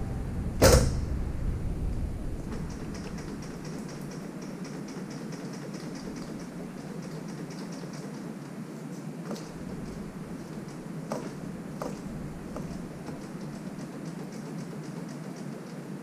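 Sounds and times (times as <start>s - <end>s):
sharp metallic clank: 0.0s - 1.2s.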